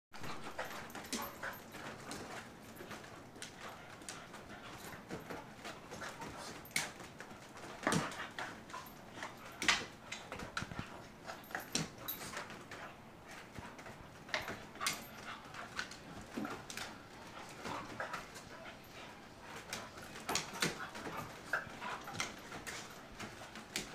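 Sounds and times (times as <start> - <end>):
dogs play-wrestling sounds: 0.2 - 23.9.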